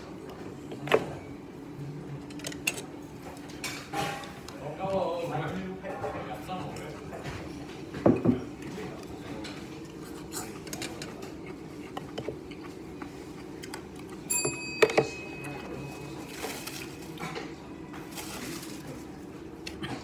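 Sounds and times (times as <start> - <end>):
dish ringing clink: 14.3 - 16.4
tableware clinking: 14.3 - 17.6.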